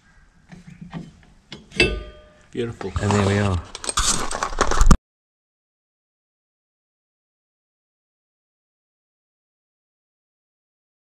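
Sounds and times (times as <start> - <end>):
sharp metallic clink: 1.7 - 2.5.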